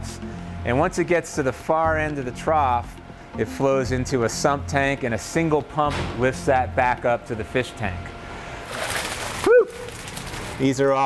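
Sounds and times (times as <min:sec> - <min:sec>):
water splashing into fish tank: 0:08.6 - 0:10.8.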